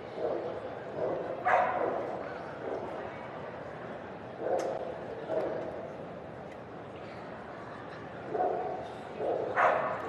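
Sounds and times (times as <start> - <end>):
dog barking: 0.2 - 2.1, 8.4 - 10.0.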